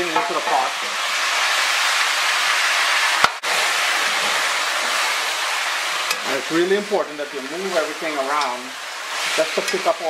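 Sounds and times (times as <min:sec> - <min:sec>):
meat sizzling in a pot: 0:00.0 - 0:10.0.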